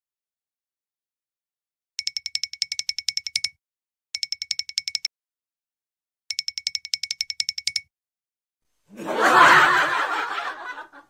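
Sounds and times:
rapid high bell-like dings: 0:02.0 - 0:03.6, 0:06.3 - 0:07.9.

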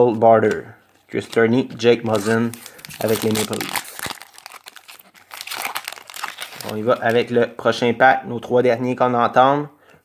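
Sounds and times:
plastic wrapper crinkling: 0:00.8 - 0:07.3.

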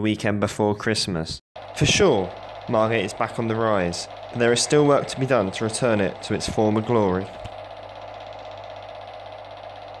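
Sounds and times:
small machine humming and rattling: 0:01.6 - 0:10.0.

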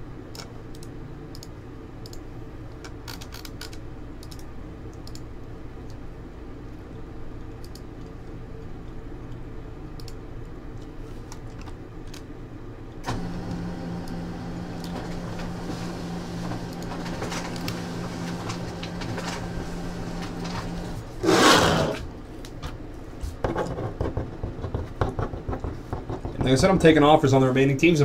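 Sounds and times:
low room hum: 0:00.0 - 0:28.0.

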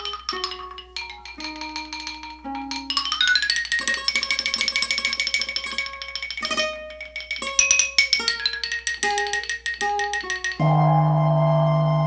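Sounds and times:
plucked string instrument: 0:00.0 - 0:12.0.

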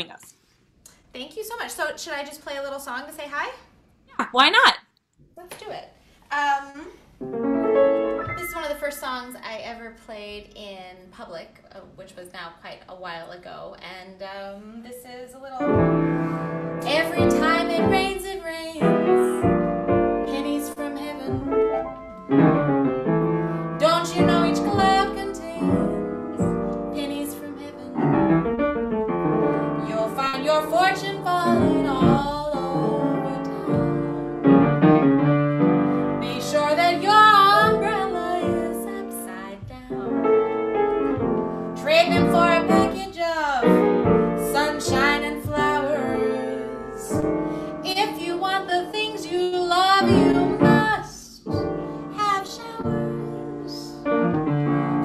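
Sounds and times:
jazz piano: 0:07.2 - 0:09.4, 0:15.6 - 0:55.0.

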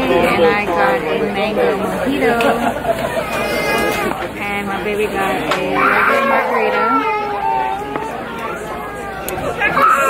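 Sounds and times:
chatter of many diners: 0:00.0 - 0:10.0.

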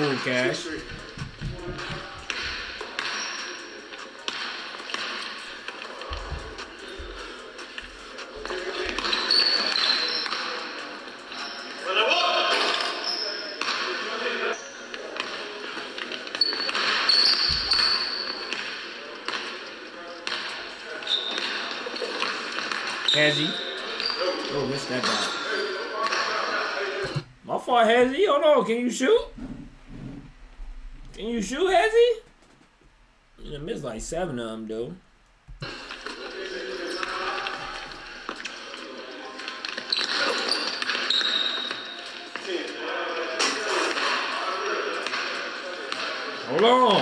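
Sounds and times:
music: 0:03.6 - 0:10.0.

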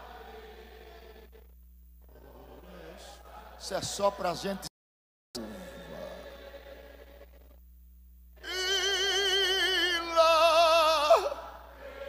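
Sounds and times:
man singing long vibrato note: 0:08.4 - 0:11.4.

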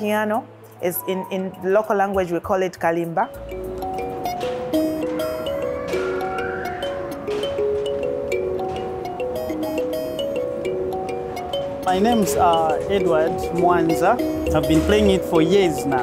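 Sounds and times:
kalimba melody: 0:00.0 - 0:16.0.

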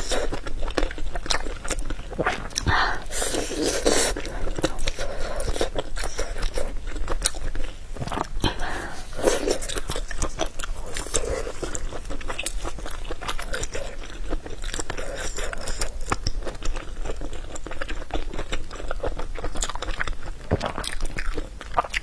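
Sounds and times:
person chewing food: 0:00.0 - 0:22.0.

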